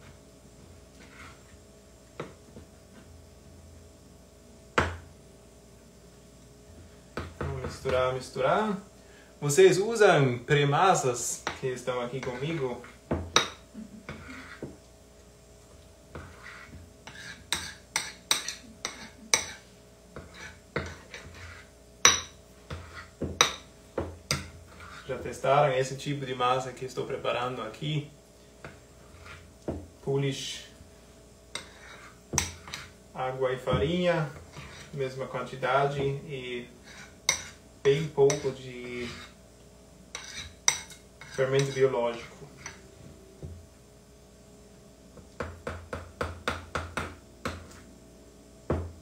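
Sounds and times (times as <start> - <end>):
spoon stirring dough: 11.2 - 14.8, 16.1 - 23.7, 24.3 - 25.4, 28.6 - 29.8, 31.5 - 33.0, 33.6 - 36.2, 36.8 - 39.4, 40.1 - 42.9.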